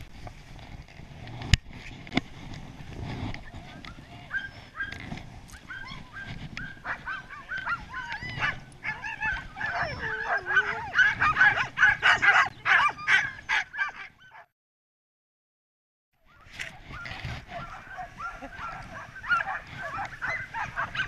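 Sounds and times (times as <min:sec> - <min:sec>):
dogs yipping and barking: 0:03.6 - 0:14.5, 0:16.3 - 0:21.0.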